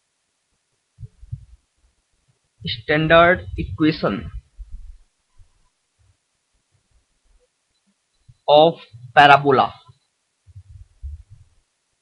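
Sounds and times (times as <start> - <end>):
soft low thumps: 1.0 - 1.7, 2.6 - 6.2, 10.5 - 11.6.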